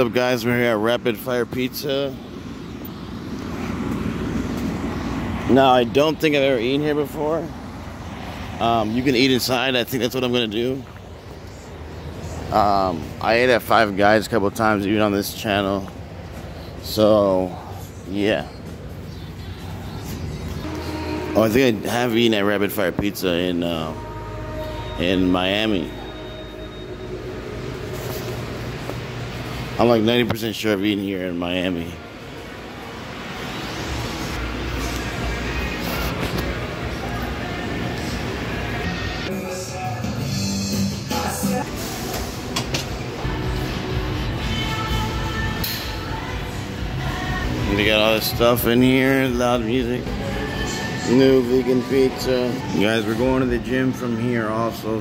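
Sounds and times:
truck engine rumble: 0.0s - 39.3s
faint music over speakers: 0.0s - 55.0s.

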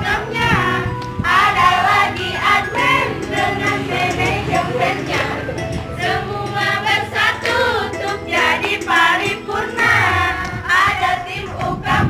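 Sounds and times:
group singing a cheer song: 0.0s - 12.0s.

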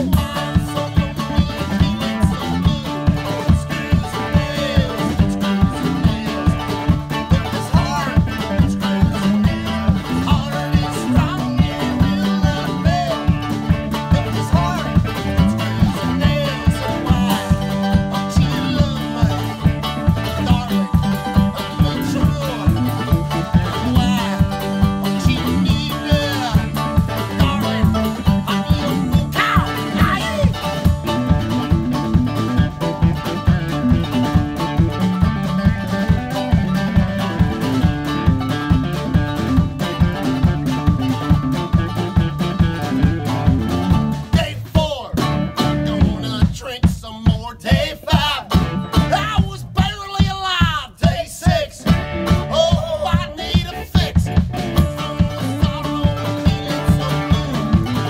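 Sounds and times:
man singing: 0.0s - 34.8s, 42.5s - 58.0s
country-rock band playing: 0.0s - 58.0s
drum kit beat: 0.0s - 58.0s.

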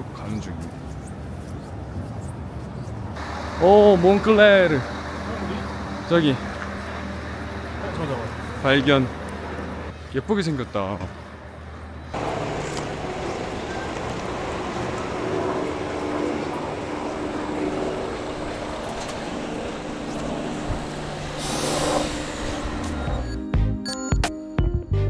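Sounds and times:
road noise: 0.0s - 23.4s
vehicle engine running: 12.2s - 23.4s
brief hiss: 21.4s - 22.5s.

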